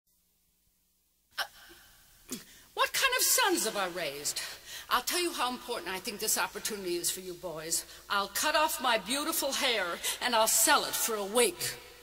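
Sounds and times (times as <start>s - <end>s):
faint steady hiss: 0.1s - 12.0s.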